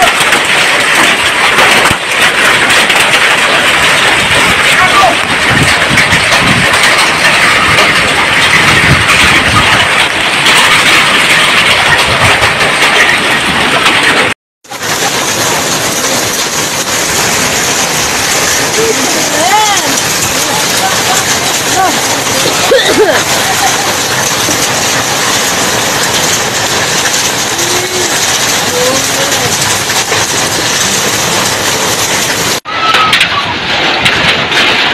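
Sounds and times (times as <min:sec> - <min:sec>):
hail clattering on ground and roof: 0:00.0 - 0:34.9.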